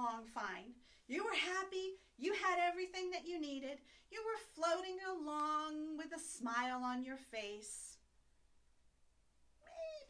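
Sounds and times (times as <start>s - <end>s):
woman speaking: 0.0s - 8.0s.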